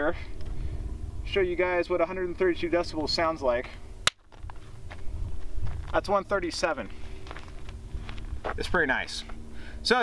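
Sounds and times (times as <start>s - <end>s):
low rumble: 0.0s - 9.9s.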